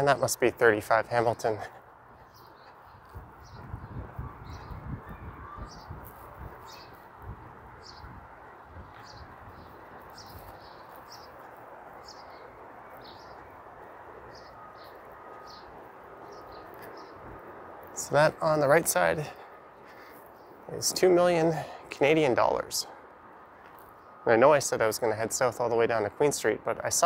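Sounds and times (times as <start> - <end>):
city street hum: 0.0 - 27.0
small bird chirping: 2.2 - 7.1.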